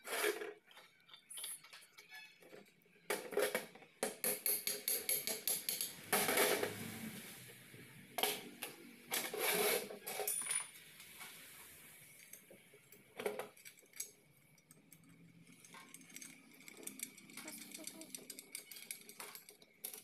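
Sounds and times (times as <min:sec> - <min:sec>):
metal parts clinking: 0:13.2 - 0:20.0.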